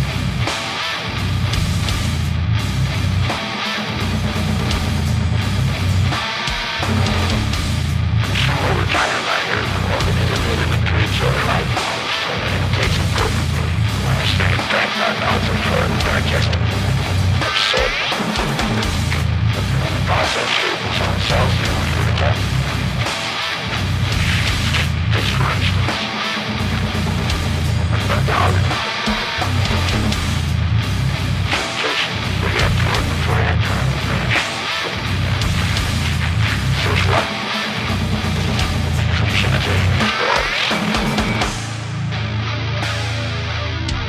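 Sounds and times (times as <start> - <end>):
death metal band playing: 0.0 - 44.0.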